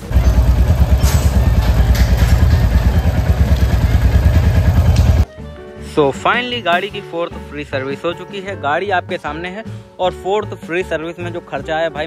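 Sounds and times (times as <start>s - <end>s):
motorcycle engine idling: 0.0s - 5.2s.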